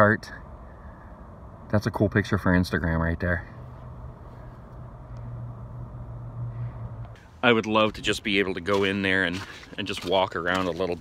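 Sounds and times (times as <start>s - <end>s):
low rumbling hum: 0.0s - 10.5s.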